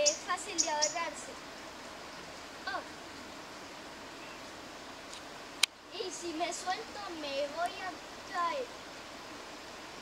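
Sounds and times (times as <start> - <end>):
river rushing: 0.0 - 10.0.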